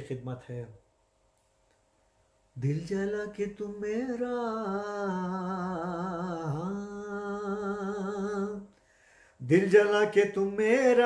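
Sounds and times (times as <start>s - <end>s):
man singing a long wavering note: 2.6s - 8.7s.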